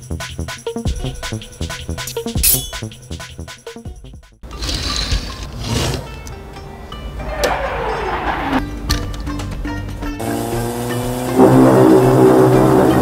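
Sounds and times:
background music: 0.0s - 13.0s
race car engine passing by: 6.9s - 8.8s, 10.2s - 13.0s.

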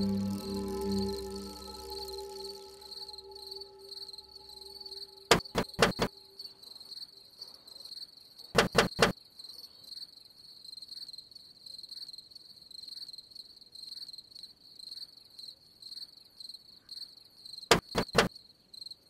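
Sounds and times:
crickets chirping: 0.0s - 8.3s.

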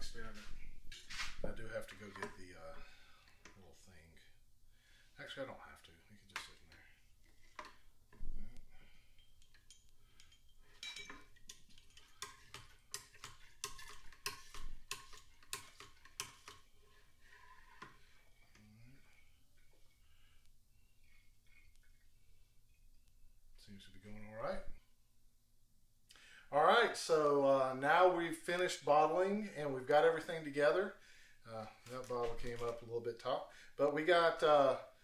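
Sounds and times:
bottling gear clinking on glass bottles: 9.0s - 12.6s.

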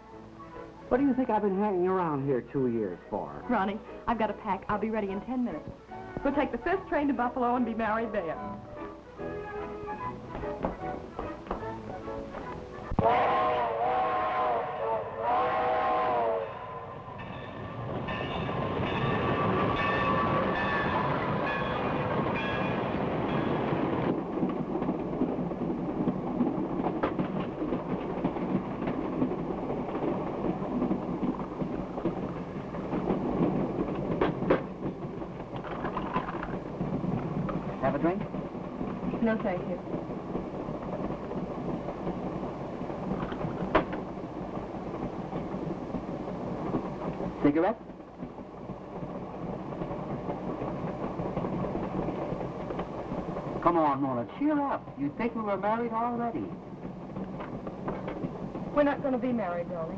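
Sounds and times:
train rumbling and clattering: 0.0s - 59.9s
train whistle blasts: 12.8s - 17.0s.

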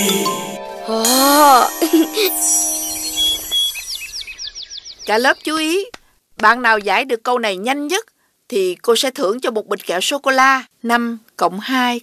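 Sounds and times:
held musical note: 0.0s - 4.0s
birds chirping: 1.2s - 6.6s.

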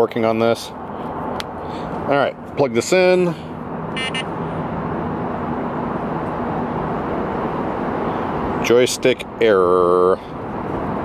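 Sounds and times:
outdoor traffic rumble and hiss: 0.0s - 11.0s.

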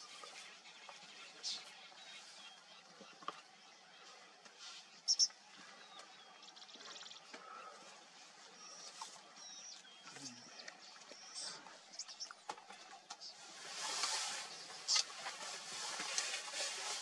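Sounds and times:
birds chirping and whistling: 0.0s - 12.4s, 13.2s - 17.0s
faint grassland ambience: 0.0s - 17.0s.

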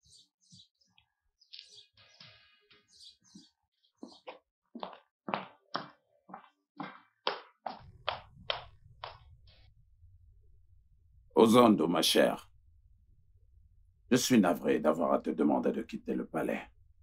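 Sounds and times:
heeled footsteps on paving stones: 3.4s - 9.3s
low steady hum: 7.9s - 17.0s.

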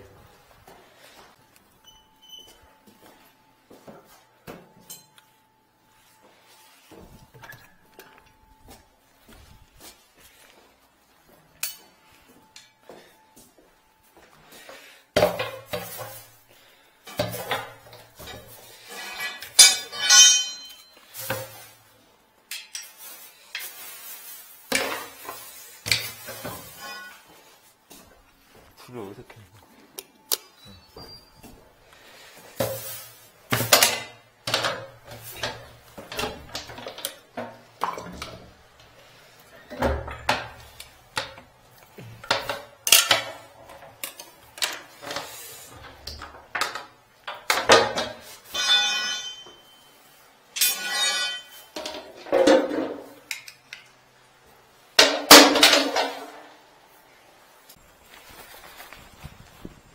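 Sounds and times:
metal objects clanking: 4.5s - 5.2s, 17.1s - 21.8s, 24.7s - 27.5s, 32.6s - 38.6s, 42.2s - 53.4s, 55.0s - 56.5s.

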